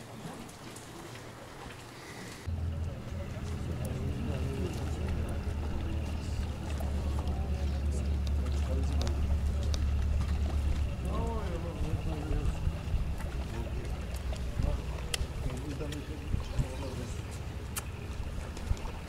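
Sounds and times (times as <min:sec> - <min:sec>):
low engine rumble: 0:00.3 - 0:19.0
people talking: 0:02.4 - 0:17.4.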